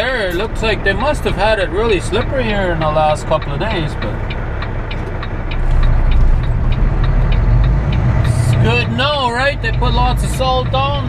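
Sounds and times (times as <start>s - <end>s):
truck engine droning: 0.0s - 11.0s
turn signal ticking: 0.0s - 11.0s.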